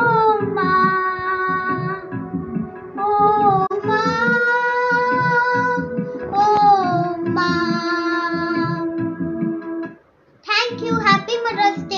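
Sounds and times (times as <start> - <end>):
child singing: 0.0 - 2.1, 3.0 - 9.0, 10.5 - 11.9.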